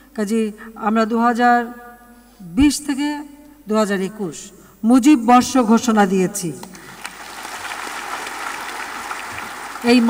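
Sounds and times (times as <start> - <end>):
audience applauding: 7.0 - 10.0.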